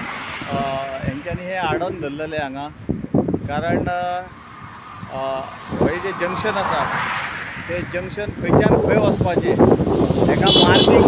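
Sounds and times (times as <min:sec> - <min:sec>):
faint road traffic: 0:00.0 - 0:11.0
man speaking: 0:00.5 - 0:02.7, 0:10.3 - 0:11.0.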